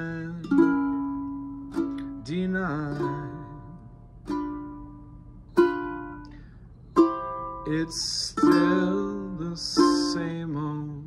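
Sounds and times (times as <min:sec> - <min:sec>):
ukulele chords strummed: 0:00.0 - 0:11.0.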